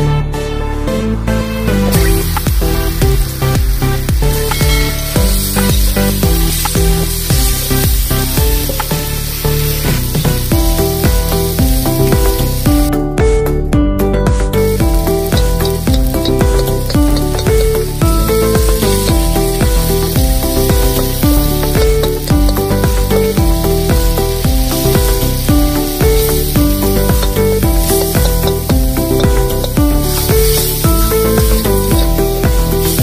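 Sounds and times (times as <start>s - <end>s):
background music with beat: 0.0s - 33.0s
oil sizzling: 1.7s - 13.0s, 14.4s - 33.0s.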